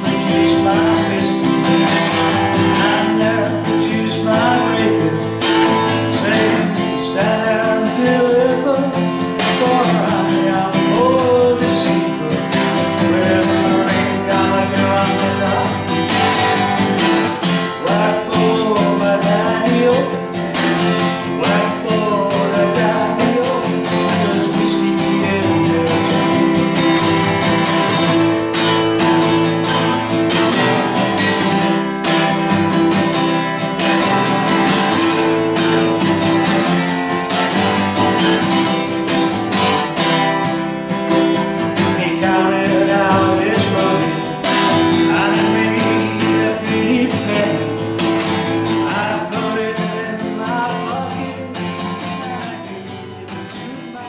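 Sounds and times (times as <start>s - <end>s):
man singing: 0.0s - 32.5s, 33.8s - 54.0s
acoustic guitar strumming: 0.0s - 54.0s.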